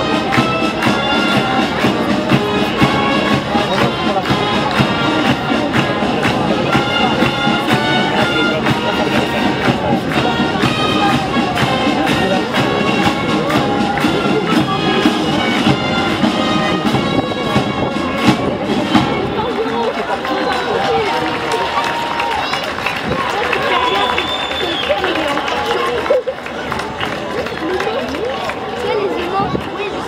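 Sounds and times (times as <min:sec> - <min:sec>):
parade band music with drumbeats: 0:00.0 - 0:22.2
crowd talking: 0:00.0 - 0:30.0.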